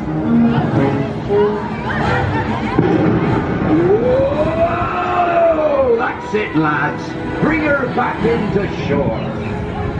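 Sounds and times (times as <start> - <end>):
ride rumbling: 0.0 - 9.9.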